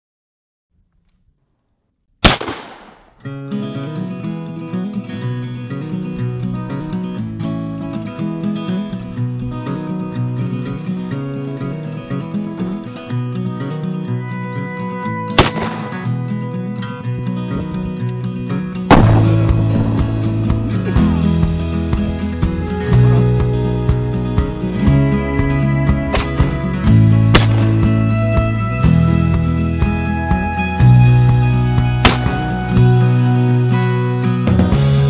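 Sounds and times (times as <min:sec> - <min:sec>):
shotgun shots: 0:02.2 - 0:03.2, 0:15.4 - 0:16.2, 0:18.9 - 0:21.0, 0:27.3 - 0:27.9, 0:32.0 - 0:32.5
background music with steady beat: 0:18.9 - 0:33.4.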